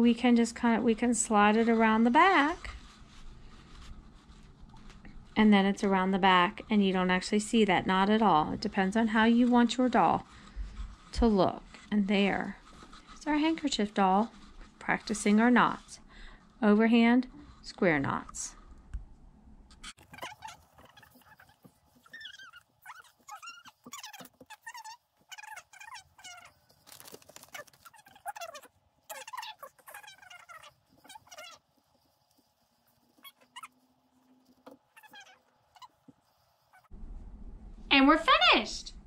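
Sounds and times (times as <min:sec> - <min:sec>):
fast-forward high-pitched chatter: 0:27.5 - 0:31.7.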